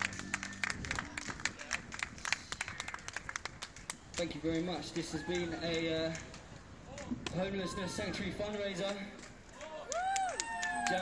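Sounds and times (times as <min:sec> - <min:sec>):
audience applause: 0:00.0 - 0:03.6.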